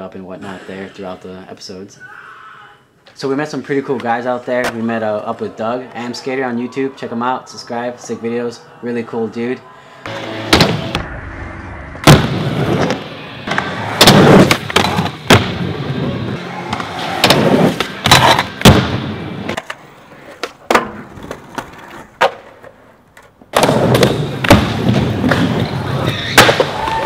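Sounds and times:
skateboard wheels rolling on concrete: 0:10.1 - 0:27.0
skateboard tail pops and landings: 0:26.3 - 0:27.0.

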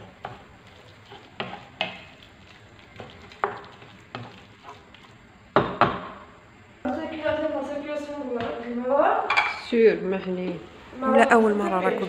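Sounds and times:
spatula scraping frying pan: 0:00.0 - 0:05.2
faint sizzle of frying: 0:00.0 - 0:12.0.

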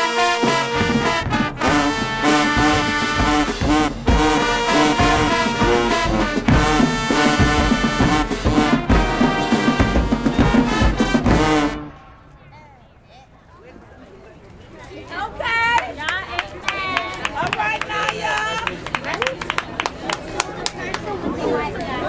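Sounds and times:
marching band playing: 0:00.0 - 0:12.7
heavy drum hits: 0:00.5 - 0:12.2
faint voices: 0:11.9 - 0:22.0.

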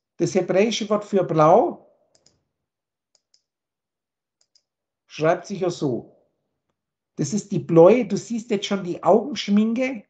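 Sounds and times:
computer mouse clicks: 0:02.1 - 0:02.4, 0:03.1 - 0:03.5, 0:04.4 - 0:04.7.

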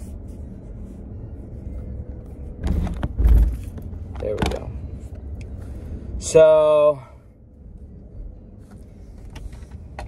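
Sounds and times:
car cabin engine rumble: 0:00.0 - 0:10.0.

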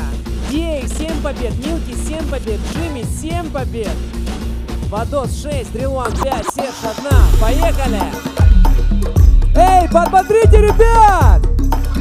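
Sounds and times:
rapping over a beat: 0:00.0 - 0:04.0, 0:04.8 - 0:08.4
steady bass line: 0:00.0 - 0:12.0.

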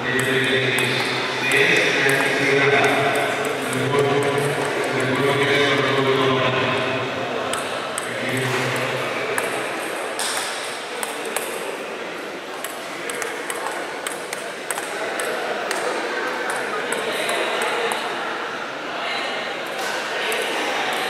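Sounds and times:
voices chattering: 0:00.0 - 0:21.0
table tennis ball pinging: 0:00.1 - 0:05.4, 0:07.4 - 0:11.6, 0:12.5 - 0:18.1.

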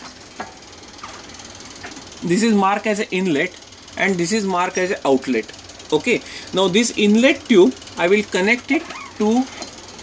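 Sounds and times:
low mechanical whir: 0:00.0 - 0:10.0.

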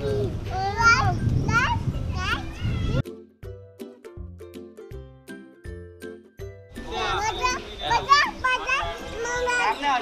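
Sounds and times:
toddler calling out: 0:00.0 - 0:03.0.

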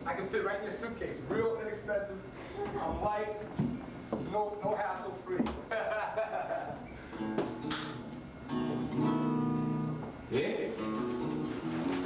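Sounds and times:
acoustic guitar chords: 0:07.0 - 0:12.0.

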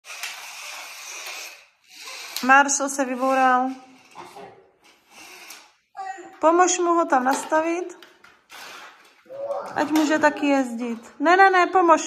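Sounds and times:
toy slot car motors whirring: 0:00.0 - 0:04.2, 0:04.9 - 0:05.8.

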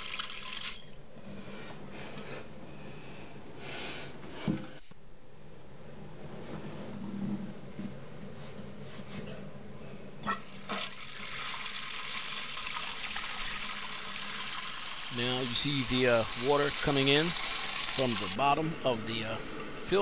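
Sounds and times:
water hissing into toilet tank: 0:10.3 - 0:20.0.

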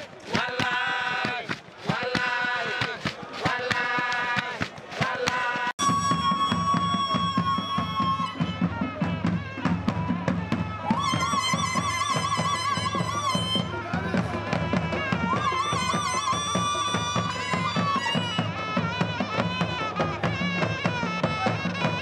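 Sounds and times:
double-headed drums beating: 0:00.0 - 0:22.0
reedy shawm melody: 0:00.0 - 0:22.0
calabash beating: 0:00.1 - 0:05.7.

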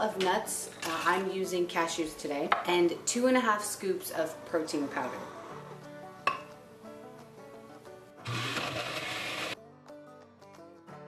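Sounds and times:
background music: 0:00.0 - 0:11.0
blender running: 0:08.2 - 0:09.6.

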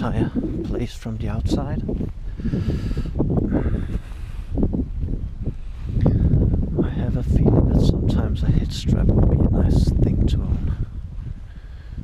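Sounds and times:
wind buffeting microphone: 0:00.0 - 0:12.0
footsteps through grass: 0:03.2 - 0:05.9.

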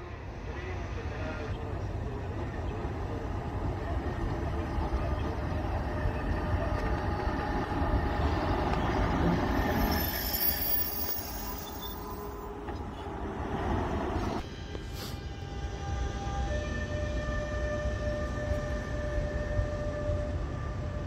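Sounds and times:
locomotives passing on rails: 0:00.0 - 0:21.0
high-pitched wheel squeals: 0:09.3 - 0:12.5.

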